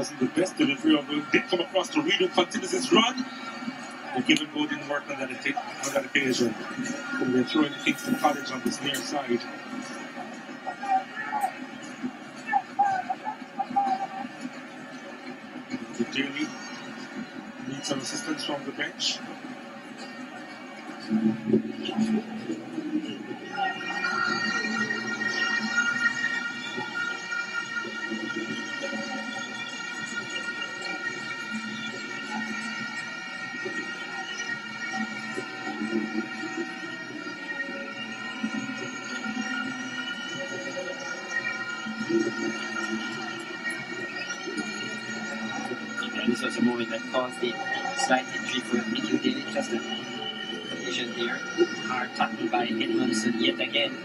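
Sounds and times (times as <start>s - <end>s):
crowd murmur: 0.0s - 29.3s.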